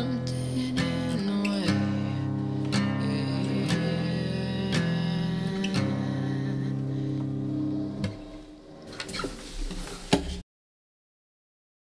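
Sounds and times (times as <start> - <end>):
guitar chord ringing: 0.0 - 9.1.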